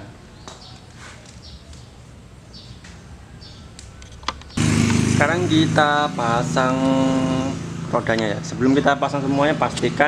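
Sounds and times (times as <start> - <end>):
motorcycle engine running: 4.5 - 10.0.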